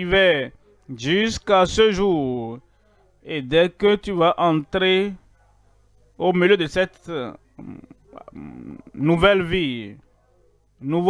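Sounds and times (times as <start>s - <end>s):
person speaking: 0.0s - 5.3s, 6.1s - 10.0s
muffled voice talking: 6.1s - 10.1s.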